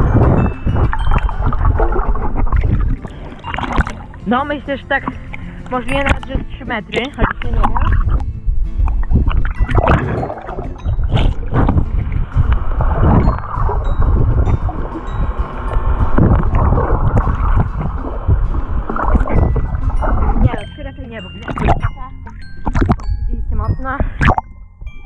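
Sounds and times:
low rumble of moving water: 0.0s - 25.0s
underwater sloshing and bubbling: 0.0s - 25.0s.

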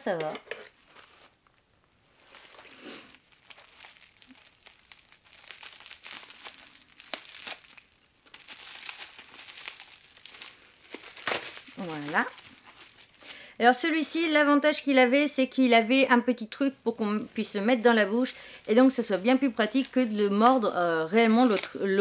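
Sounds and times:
plastic packaging crinkling: 2.1s - 22.0s.

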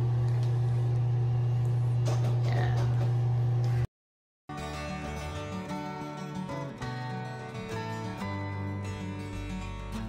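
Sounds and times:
low mechanical hum: 0.0s - 3.9s.

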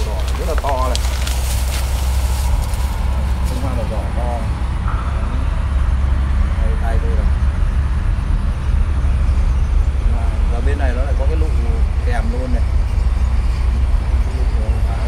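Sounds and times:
steady low rumble: 0.0s - 15.0s
faint man's voice: 3.4s - 5.6s.

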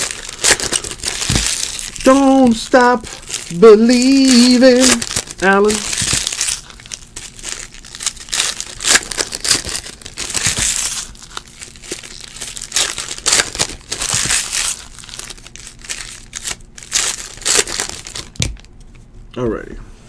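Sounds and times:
foil wrappers tearing and crinkling: 0.0s - 18.7s.

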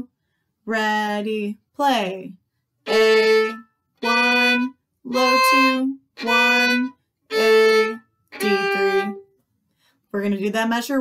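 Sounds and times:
violin bowed notes: 2.8s - 9.3s.

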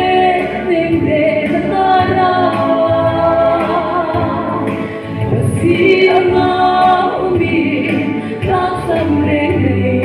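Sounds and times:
woman singing gospel into microphone: 0.0s - 10.0s.

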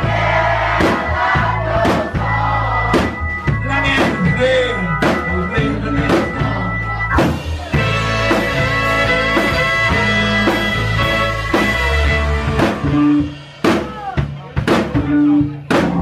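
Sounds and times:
drum hits: 0.0s - 4.4s, 7.2s - 16.0s
live rock band playing: 0.0s - 16.0s
person singing: 3.6s - 8.4s.

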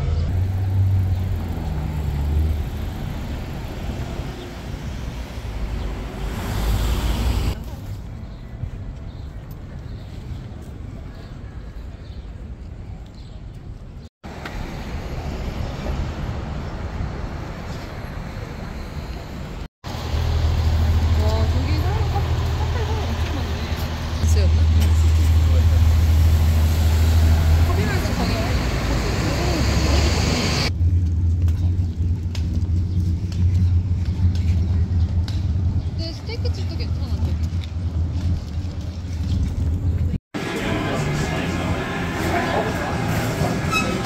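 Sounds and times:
car engines rumbling: 0.0s - 11.0s, 13.6s - 44.0s
voices of passers-by: 0.0s - 30.7s, 33.0s - 44.0s.

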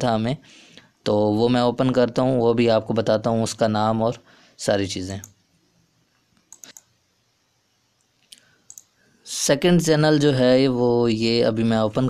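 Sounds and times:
faint computer mouse clicks: 6.3s - 6.9s, 8.0s - 8.9s.

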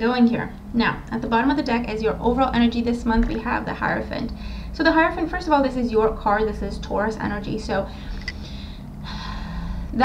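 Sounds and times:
woman drawing in a breath: 8.0s - 9.9s.

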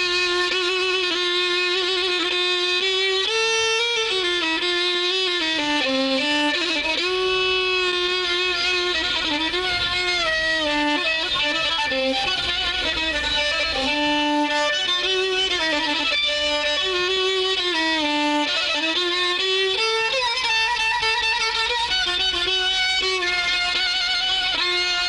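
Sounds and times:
solo violin improvising: 0.0s - 25.0s.

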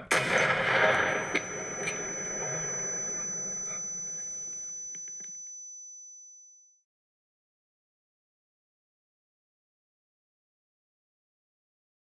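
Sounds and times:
explosion rushing and crackling: 0.1s - 2.7s
high-pitched ringing tone: 0.1s - 6.8s.

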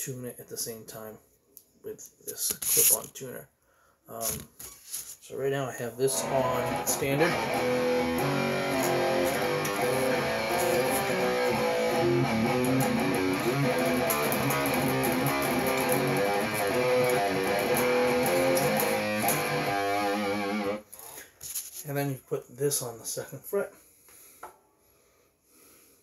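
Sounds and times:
electric guitar playing: 6.1s - 20.8s.

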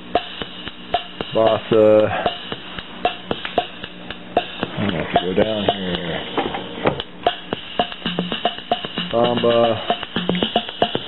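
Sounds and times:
electronic bossa nova rhythm: 0.0s - 11.0s.

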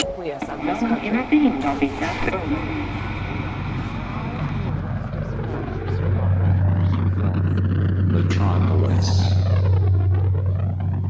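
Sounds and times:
faint indistinct voices: 0.0s - 9.7s
jet airliner rumbling overhead: 0.0s - 11.0s.

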